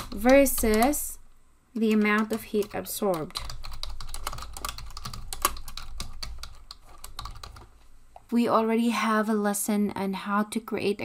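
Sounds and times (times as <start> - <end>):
typing on computer keyboard: 0.0 - 1.2, 1.8 - 7.7.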